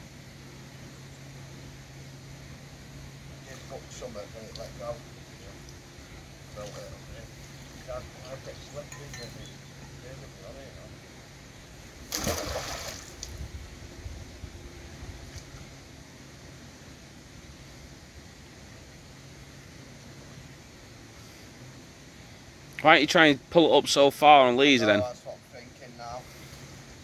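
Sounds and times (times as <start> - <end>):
magnet splashing into water: 12.0 - 13.4.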